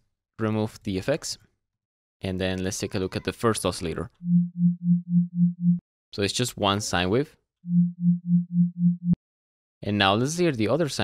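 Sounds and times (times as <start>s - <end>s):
pulsing sine-wave bass tone: 4.3s - 5.8s, 7.7s - 9.2s.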